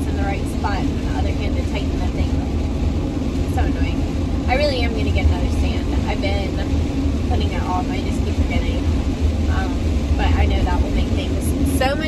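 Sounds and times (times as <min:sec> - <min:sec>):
road and engine rumble: 0:00.0 - 0:12.0.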